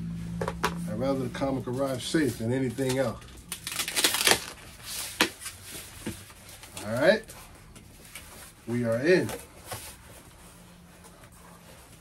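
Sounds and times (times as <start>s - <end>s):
plastic bags rustling and crinkling: 1.5s - 12.0s.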